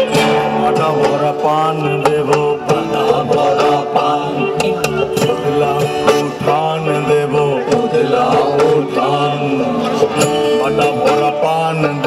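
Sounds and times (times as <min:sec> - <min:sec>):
man singing: 0:00.0 - 0:12.0.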